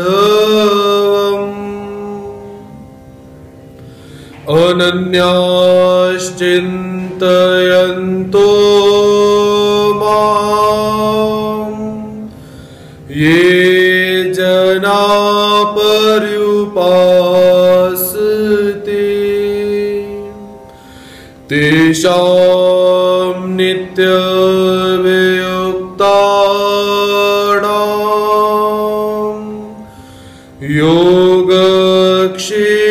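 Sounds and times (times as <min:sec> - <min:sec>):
man chanting: 0:00.0 - 0:02.7, 0:04.4 - 0:12.4, 0:13.0 - 0:20.5, 0:21.5 - 0:29.9, 0:30.6 - 0:32.9
steady low drone: 0:00.0 - 0:32.9.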